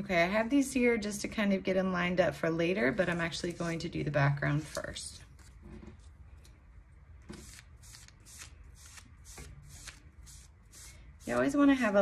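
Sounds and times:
foam brush swishing on paper: 2.9 - 6.1, 7.3 - 12.0.

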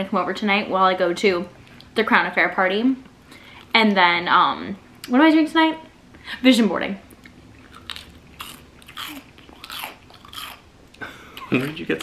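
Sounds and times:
crispy fried chicken crunching: 7.6 - 10.6.

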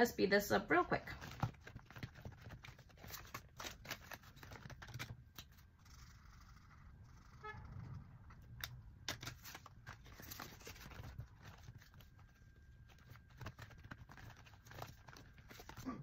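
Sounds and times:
plastic sleeves and paper rustling: 0.9 - 5.7, 9.0 - 16.0.

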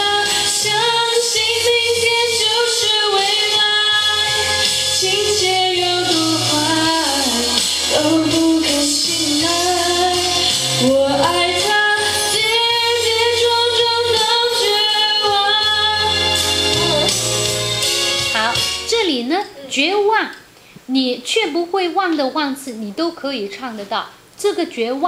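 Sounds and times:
woman singing pop ballad: 0.0 - 18.7
backing track with low bass: 0.0 - 18.9.

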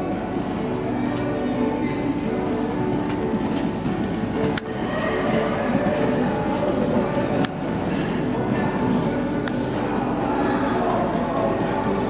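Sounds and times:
loud rumbling hall noise: 0.0 - 12.0.

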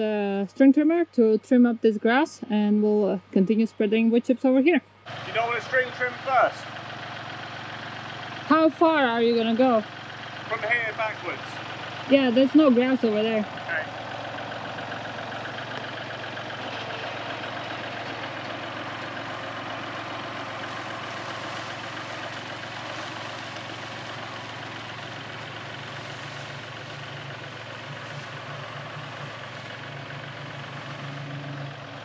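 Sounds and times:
tractor engine running: 0.0 - 32.0.

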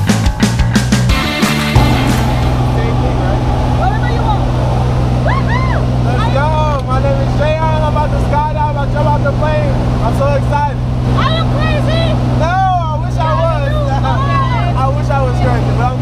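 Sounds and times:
music: 0.0 - 6.4
airplane engine drone in cabin: 1.8 - 10.0.

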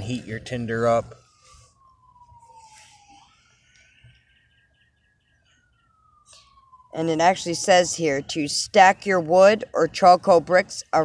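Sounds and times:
faint emergency siren wailing: 0.0 - 11.0.

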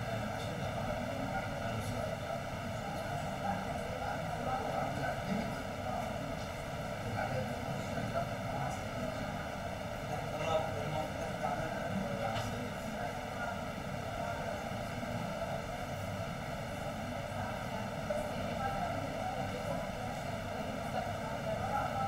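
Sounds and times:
faint hum: 0.0 - 22.0.

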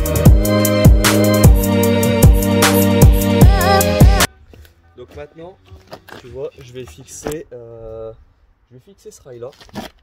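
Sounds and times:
man speaking: 4.9 - 9.6.

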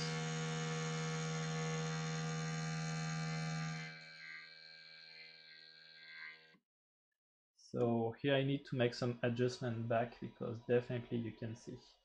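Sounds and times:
stepper motors buzzing: 0.0 - 6.5.

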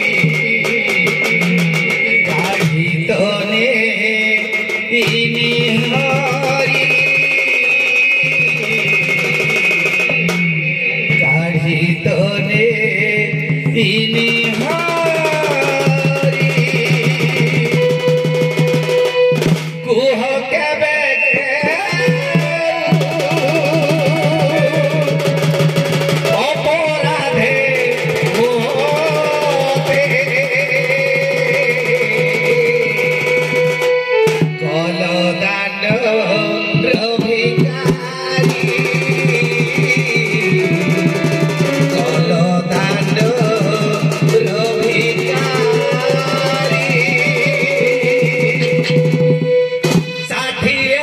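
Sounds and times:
regular beat: 0.0 - 20.2, 21.6 - 51.0
instrumental folk music: 0.0 - 51.0
ornamented folk melody: 17.1 - 19.9, 36.4 - 50.9.

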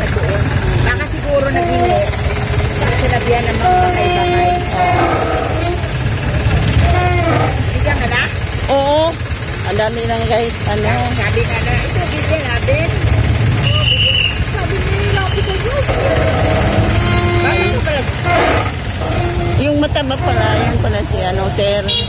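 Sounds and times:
engine idling: 0.0 - 22.0
people talking: 0.0 - 22.0.

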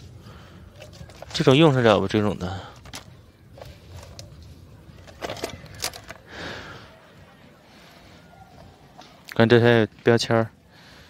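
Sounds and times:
hard objects clicking and clacking: 2.7 - 6.3.

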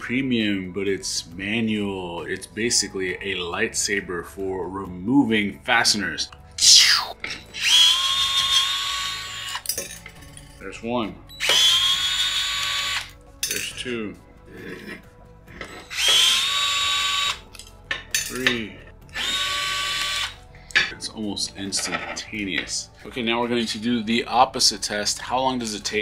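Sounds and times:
cordless screwdriver whine: 7.6 - 9.7, 11.4 - 13.1, 15.8 - 17.4, 19.1 - 20.4.

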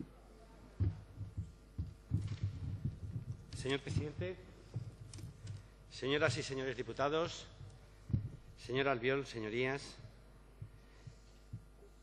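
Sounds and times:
microphone handling thumps: 0.8 - 8.7.

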